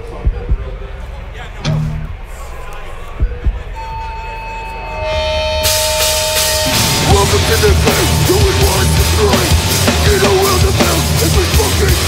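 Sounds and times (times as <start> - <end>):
low thumps: 1.6 - 2.6
guitar feedback: 3.8 - 11.8
rock band with distorted guitars: 5.1 - 12.0.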